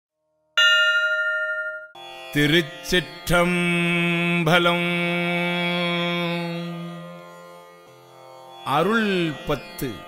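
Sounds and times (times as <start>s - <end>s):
bell strike ringing: 0.6s - 2.0s.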